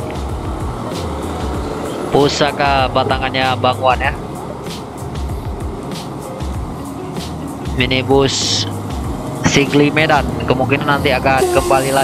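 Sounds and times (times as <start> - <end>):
bus terminal noise: 0.0 - 12.0
diesel bus engine rumble: 0.0 - 12.0.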